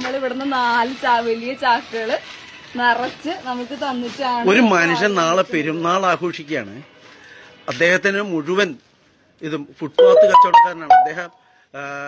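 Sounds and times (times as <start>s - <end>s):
man talking: 10.0s - 11.3s
phone ringtone melody: 10.0s - 11.3s.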